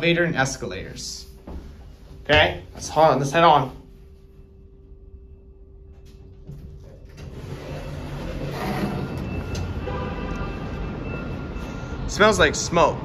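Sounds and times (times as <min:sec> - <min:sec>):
elevator hum: 0:01.3 - 0:13.0
elevator doors sliding open: 0:06.2 - 0:12.1.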